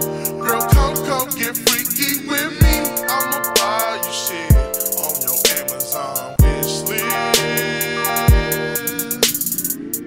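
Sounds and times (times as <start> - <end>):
quick hi-hats: 0.0 - 10.0
wavering melodic line: 0.3 - 1.0, 2.6 - 5.3, 6.8 - 8.8
deep kick drum hit: 2.6 - 2.9.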